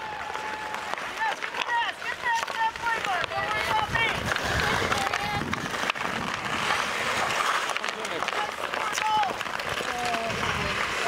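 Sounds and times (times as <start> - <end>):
hockey sticks clacking: 0.0 - 11.0
skates scraping on ice: 0.0 - 11.0.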